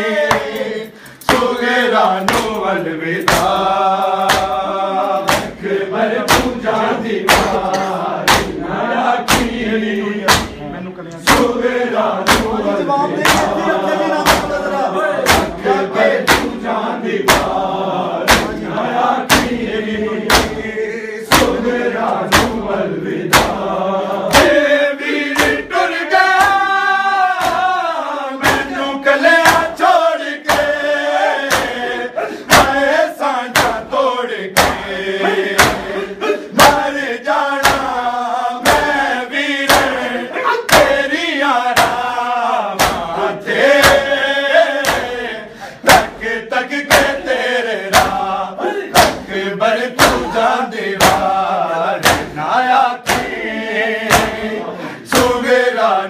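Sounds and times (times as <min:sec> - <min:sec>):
men chanting: 0:00.0 - 0:56.0
men slapping chests in unison: 0:00.1 - 0:56.0.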